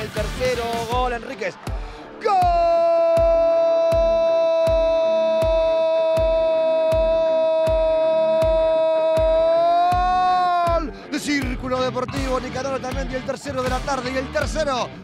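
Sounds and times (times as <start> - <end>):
background music with steady beat: 0.0 - 15.0.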